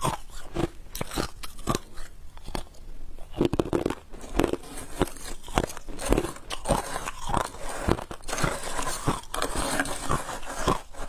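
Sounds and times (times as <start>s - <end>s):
crushed ice being chewed: 0.0s - 11.0s.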